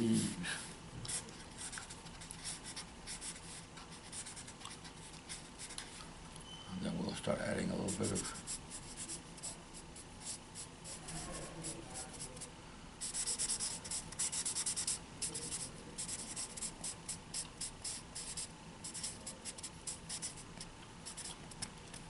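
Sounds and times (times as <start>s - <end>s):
marker scratching on paper: 1.1s - 5.9s, 7.8s - 21.7s.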